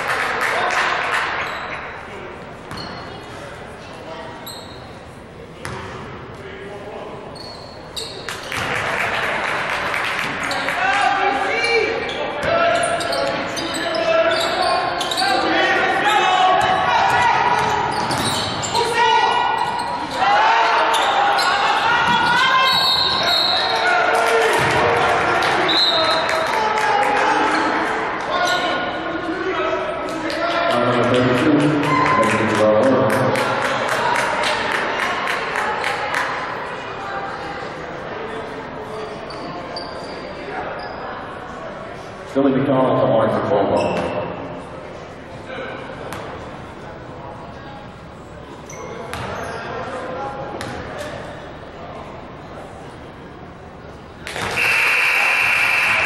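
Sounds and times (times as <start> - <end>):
sneakers squeaking: 1.3 - 8.8, 10.2 - 10.8, 11.6 - 23.9, 39.0 - 41.3, 43.7 - 44.6, 47.6 - 51.6.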